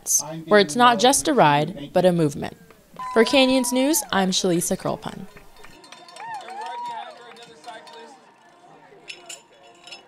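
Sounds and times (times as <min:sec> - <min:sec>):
distant voices outdoors: 0:00.0 - 0:10.0.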